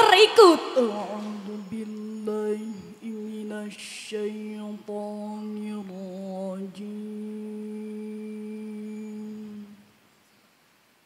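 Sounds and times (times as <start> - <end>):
person chanting recitation: 0.0 - 9.8.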